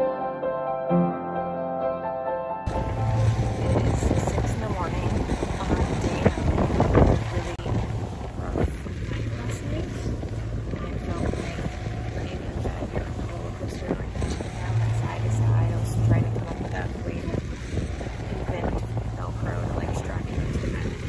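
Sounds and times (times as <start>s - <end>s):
background music: 0.0s - 8.5s
wind buffeting microphone: 2.7s - 21.0s.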